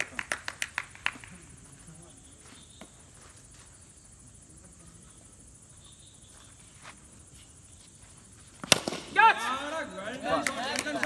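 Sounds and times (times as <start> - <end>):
open-air background: 0.0 - 11.0
cricket bat striking ball: 8.6 - 9.4.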